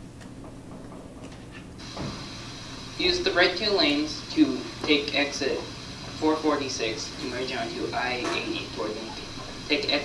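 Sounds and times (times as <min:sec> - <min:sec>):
low steady hum: 0:00.0 - 0:10.0
faint steady hiss: 0:01.8 - 0:10.0.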